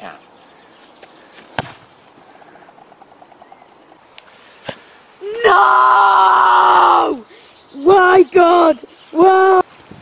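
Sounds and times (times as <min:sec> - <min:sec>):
ball kicked thud: 0:01.5 - 0:01.8.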